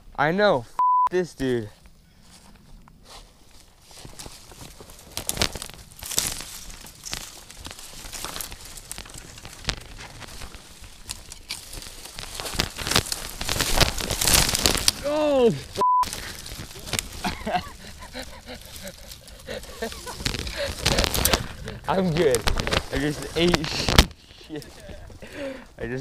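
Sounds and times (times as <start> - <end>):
twigs crackling and snapping: 1.8 - 25.8
person falling into brush: 3.9 - 25.2.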